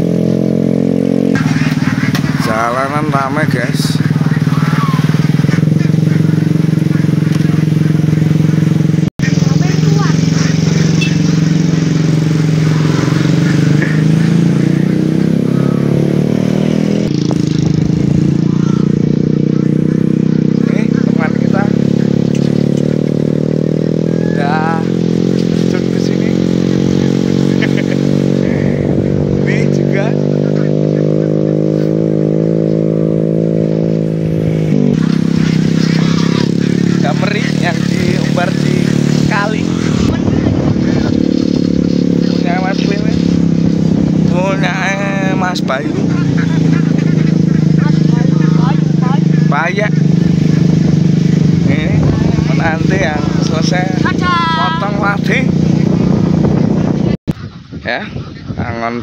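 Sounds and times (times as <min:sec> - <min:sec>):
small motorcycle engine running: 0:00.0 - 0:58.0.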